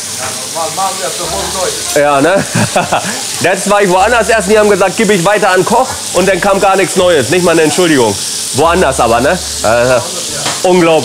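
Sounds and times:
food sizzling in pans: 0:00.0 - 0:11.0.

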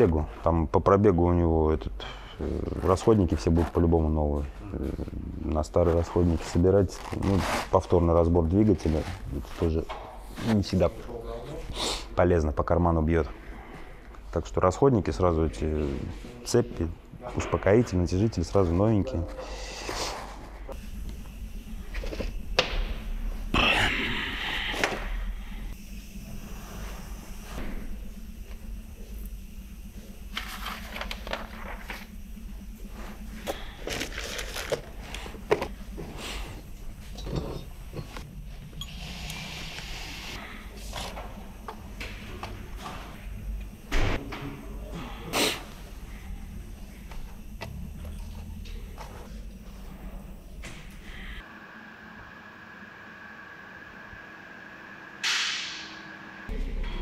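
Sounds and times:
low steady hum: 0:00.0 - 0:55.2.

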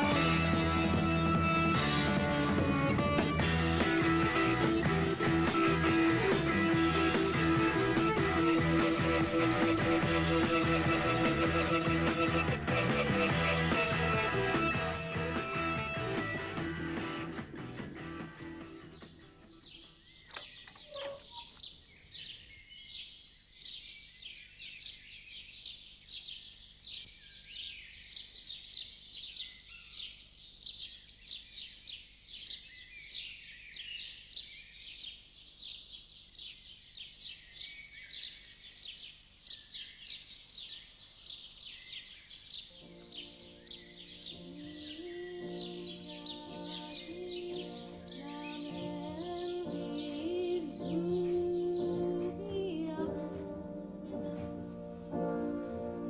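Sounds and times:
rock music: 0:00.0 - 0:19.5
soft music with held notes: 0:00.0 - 0:19.8, 0:42.7 - 0:56.0
songbirds chirping and singing: 0:00.0 - 0:56.0.

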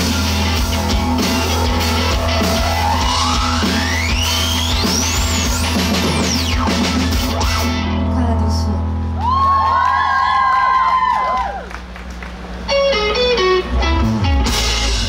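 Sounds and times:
rock band playing live: 0:00.0 - 0:09.2, 0:12.6 - 0:15.0
bass: 0:00.0 - 0:15.0
electric guitar lead note: 0:12.7 - 0:15.0.

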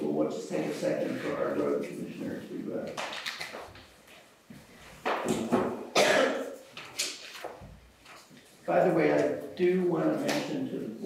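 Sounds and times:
person coughing: 0:05.9 - 0:06.6.

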